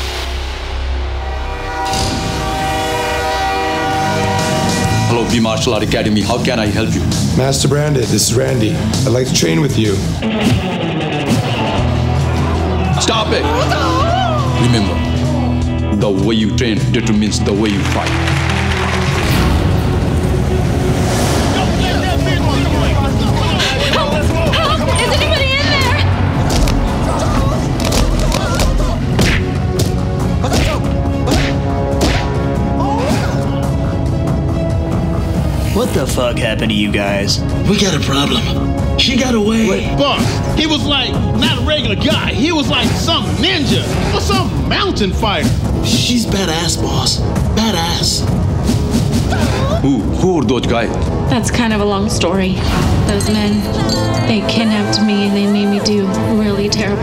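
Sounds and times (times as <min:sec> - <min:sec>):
action trailer music: 0:00.0 - 0:57.0
train horn chord: 0:00.6 - 0:05.9.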